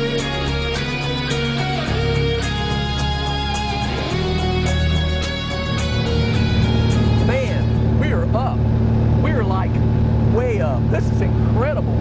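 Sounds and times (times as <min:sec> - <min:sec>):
propeller plane engine drone: 0:00.0 - 0:12.0.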